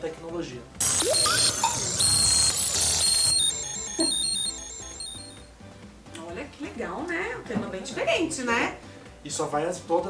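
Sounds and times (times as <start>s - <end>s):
electronic jingle of bleeping tones: 0.8s - 5.5s.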